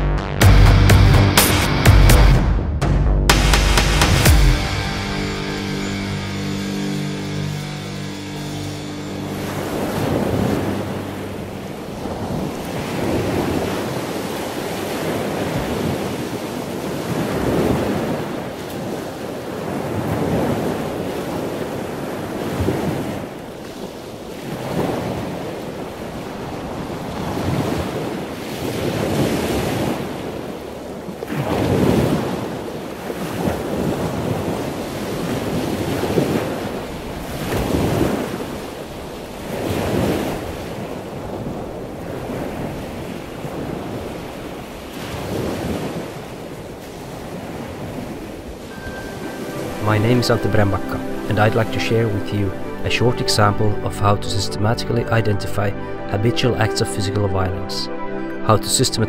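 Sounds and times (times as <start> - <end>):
wind: 3.3 - 59.0
sea waves washing ashore: 3.4 - 59.0.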